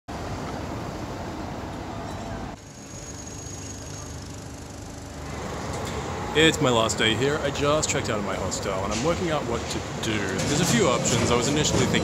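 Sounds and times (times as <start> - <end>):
street traffic noise: 0.1 - 12.0.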